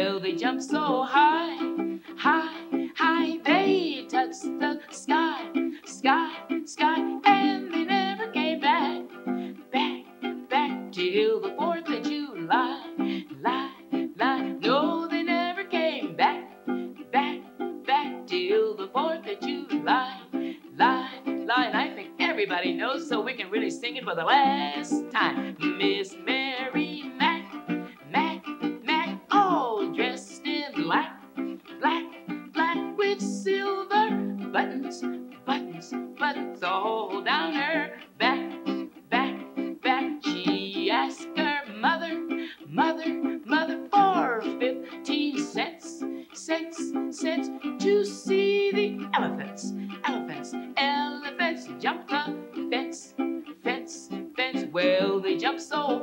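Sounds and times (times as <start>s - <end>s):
ukulele strummed: 0.0s - 56.0s
woman singing: 0.0s - 56.0s.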